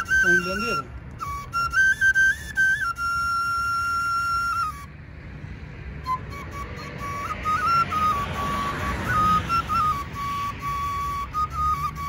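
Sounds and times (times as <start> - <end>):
flute playing high notes: 0.0 - 5.0, 5.9 - 12.0.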